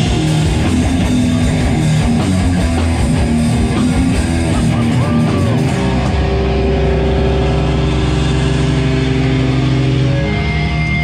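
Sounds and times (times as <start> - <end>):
distorted guitars and bass chord: 0.0 - 11.0
high feedback whine: 0.0 - 11.0.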